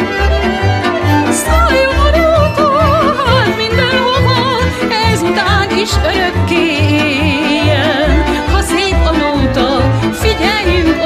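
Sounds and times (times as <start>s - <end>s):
pulsing bass accompaniment: 0.0s - 11.0s.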